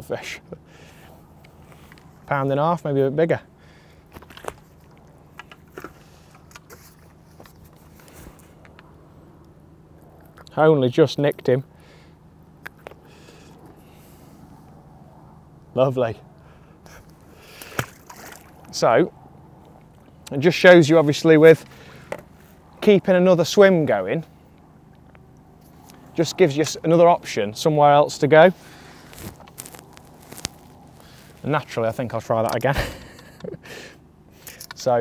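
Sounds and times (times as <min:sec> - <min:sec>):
faint outdoor background noise: 0:00.0 - 0:35.0
soft rustling: 0:28.6 - 0:31.6.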